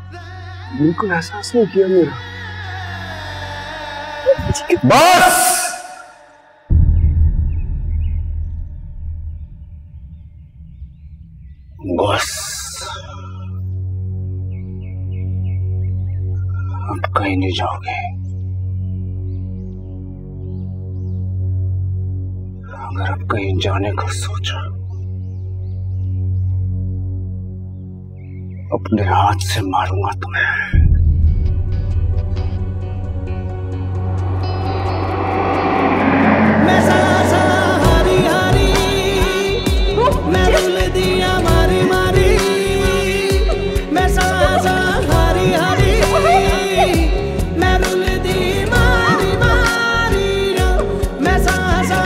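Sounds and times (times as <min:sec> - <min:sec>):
whooshing noise riser: 0:06.7 - 0:12.0, 0:30.7 - 0:40.0
deep rumbling drone: 0:06.7 - 0:17.1, 0:18.1 - 0:23.2, 0:30.7 - 0:51.3.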